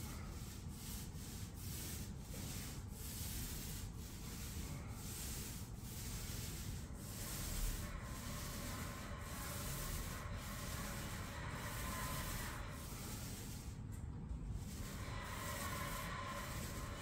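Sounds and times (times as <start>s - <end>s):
tool scraping plaster ceiling: 0.0s - 13.9s, 14.6s - 17.0s.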